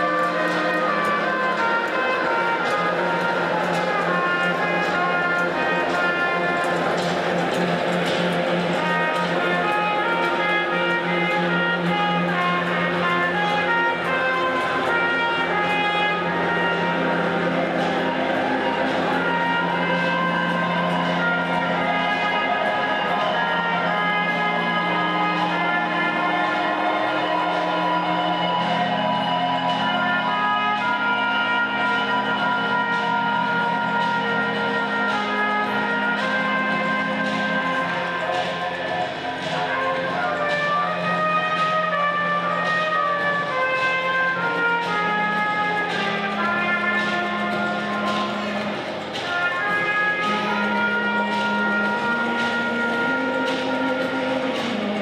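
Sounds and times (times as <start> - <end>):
guitar: 0.0 - 55.0
trumpet melody: 0.0 - 55.0.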